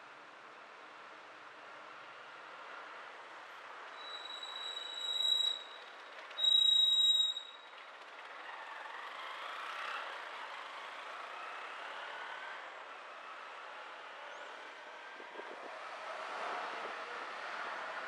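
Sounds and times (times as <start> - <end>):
faint engines: 0.1 - 18.0
brakes squealing: 3.9 - 9.5.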